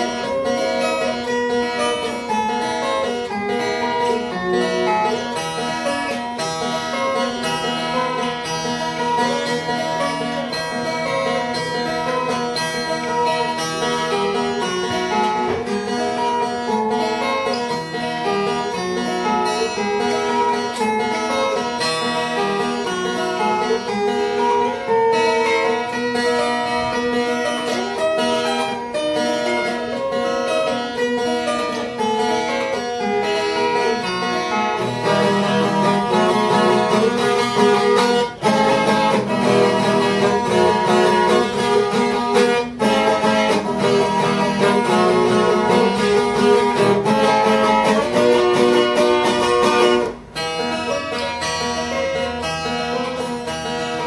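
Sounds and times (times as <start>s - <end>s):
picked folk guitar melody: 0.0s - 54.0s.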